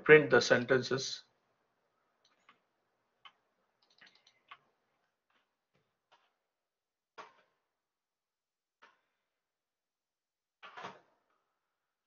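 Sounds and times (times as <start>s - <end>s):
computer keyboard keystrokes: 3.2s - 4.7s.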